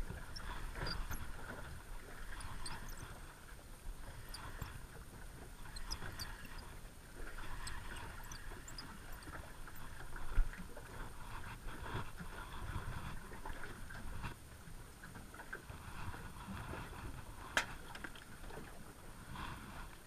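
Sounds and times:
water lapping against boat hull: 0.0s - 20.0s.

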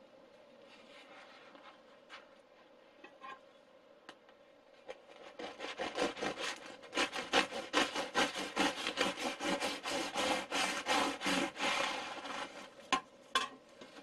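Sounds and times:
bread knife sawing through bread: 5.1s - 12.7s.

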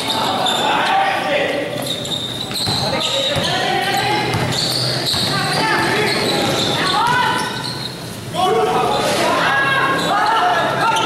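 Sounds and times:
people calling out: 0.0s - 11.0s
basketball dribbling on court: 1.8s - 7.2s.

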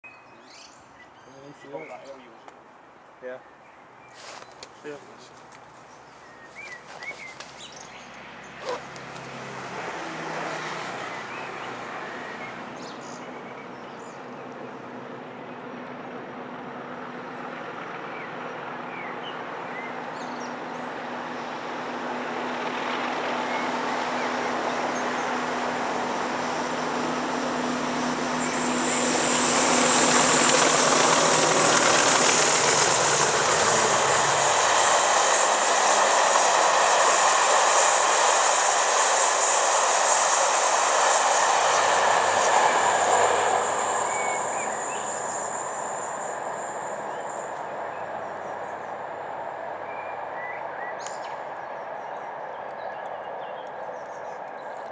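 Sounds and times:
diesel locomotive engine with whine: 3.8s - 54.9s
coaches rolling on rails: 27.8s - 47.9s.

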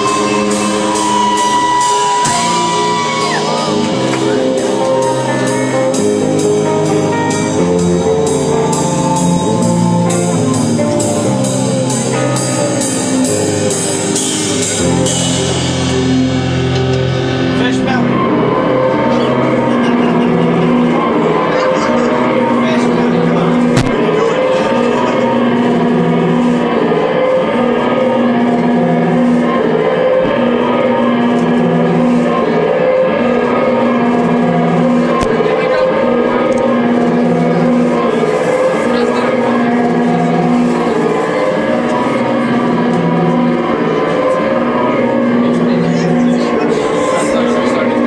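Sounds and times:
distorted electric guitars: 0.0s - 48.0s.

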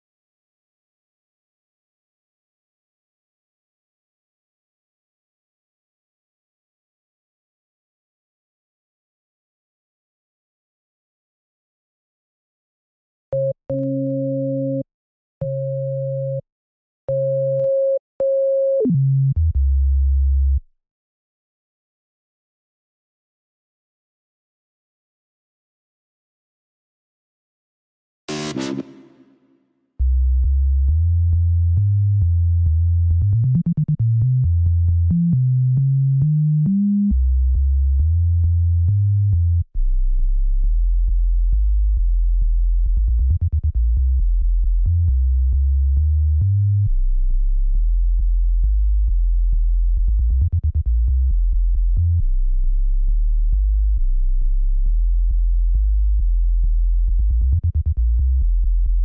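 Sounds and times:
deep synth bass line: 28.3s - 29.2s, 30.2s - 59.0s
synthesizer bass line: 28.3s - 29.2s.

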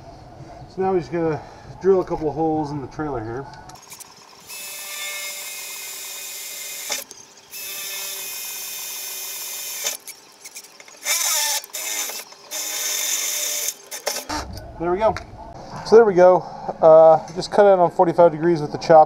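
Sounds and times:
cordless drill boring into metal: 3.9s - 14.3s.

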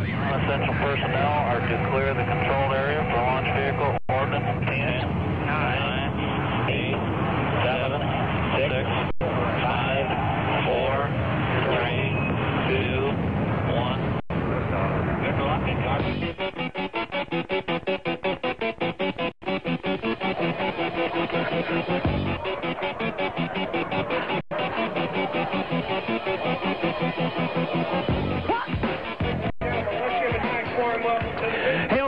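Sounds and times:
voice clips over low rumble: 0.0s - 16.4s
music with fast pulsing beat: 16.0s - 32.0s.

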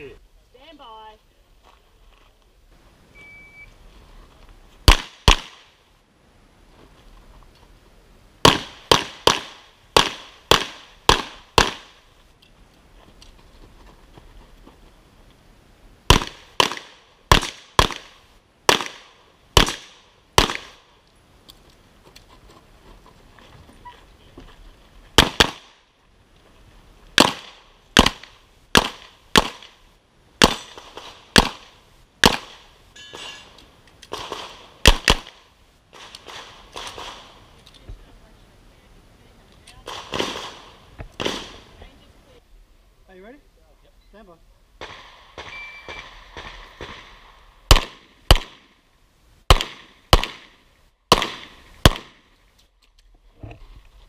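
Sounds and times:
shot timer beep: 3.2s - 3.7s
pistol shots: 4.9s - 5.7s, 8.4s - 12.0s, 16.1s - 20.8s, 25.2s - 25.8s, 27.2s - 29.8s, 30.4s - 32.6s, 34.1s - 35.4s, 39.8s - 41.6s, 44.8s - 48.7s, 49.5s - 52.2s.

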